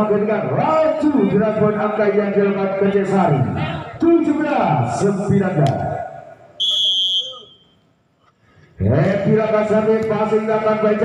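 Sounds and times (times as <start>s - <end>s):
referee's whistle blast: 6.6s - 7.9s.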